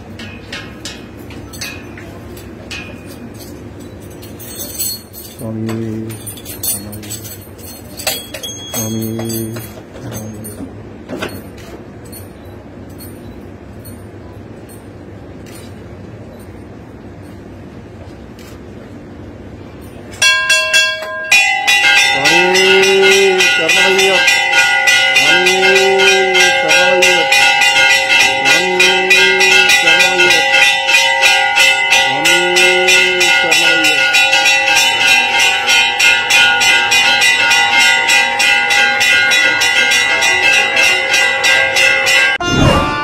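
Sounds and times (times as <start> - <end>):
bells ringing rapidly: 0.0 - 16.6, 19.7 - 43.0
conch shell blowing: 42.4 - 43.0.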